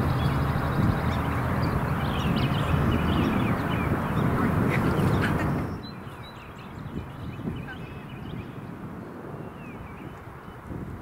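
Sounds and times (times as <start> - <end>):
birds chirping: 0.0 - 10.8
wind buffeting microphone: 0.0 - 11.0.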